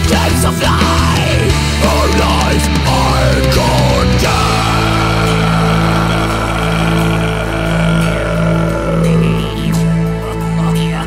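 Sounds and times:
droning metal chord: 3.1s - 10.6s.

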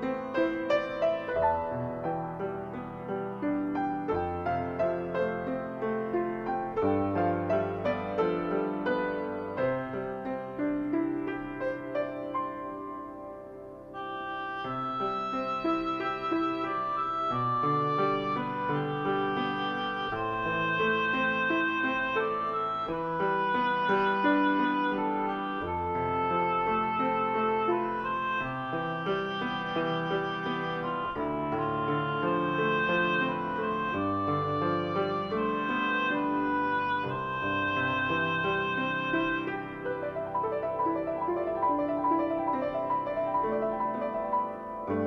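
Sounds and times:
keyboard music: 0.0s - 45.0s.

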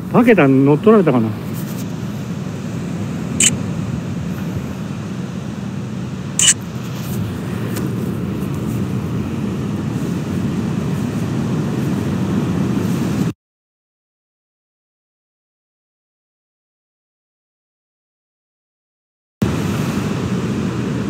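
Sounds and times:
ocean surf rumbling: 0.0s - 13.3s, 19.4s - 21.0s
sharp clicks: 6.4s - 6.6s.

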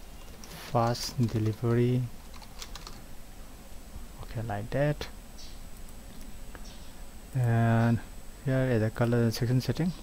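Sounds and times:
computer keyboard typing: 1.2s - 3.0s.

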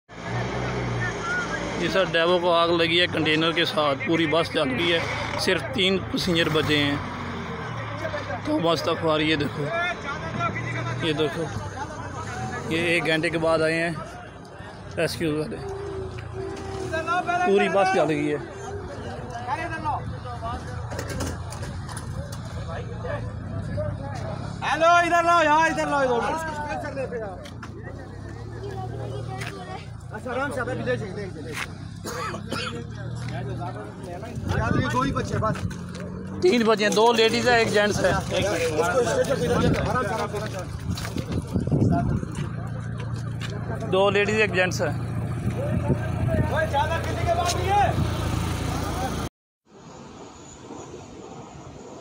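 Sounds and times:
vehicle engine humming: 0.1s - 49.3s
distant voices calling out: 14.0s - 30.6s.

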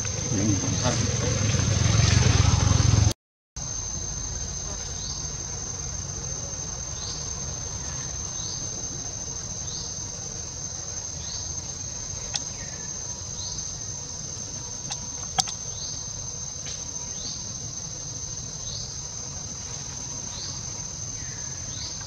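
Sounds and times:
high-pitched insect drone: 0.0s - 3.0s, 3.6s - 22.0s
sharp click: 14.9s - 15.6s.

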